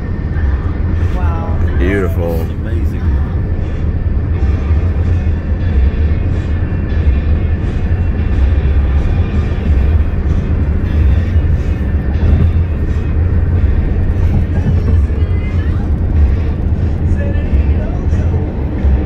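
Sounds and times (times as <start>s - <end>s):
background music: 0.0s - 19.0s
car road noise rumble: 0.0s - 19.0s.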